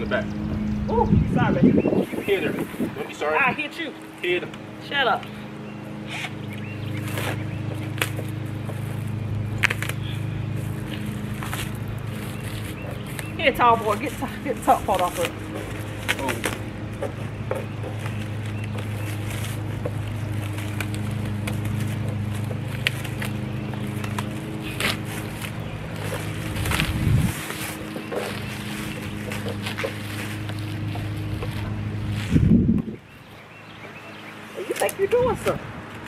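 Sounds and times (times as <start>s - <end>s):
low machine hum: 0.0s - 36.0s.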